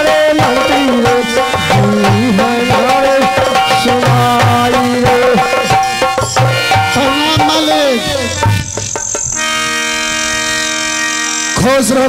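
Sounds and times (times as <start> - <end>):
reedy held musical note: 2.6 - 11.6.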